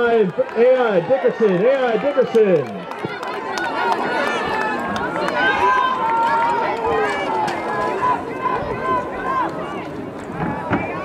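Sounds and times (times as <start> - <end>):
spectators shouting and cheering: 0.0 - 11.0.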